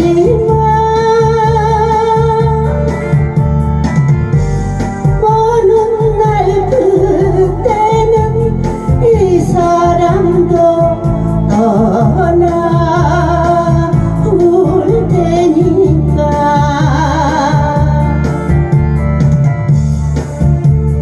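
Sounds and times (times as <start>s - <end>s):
woman singing into microphone: 0.0s - 4.2s, 5.0s - 19.0s
amplified backing music: 0.0s - 21.0s.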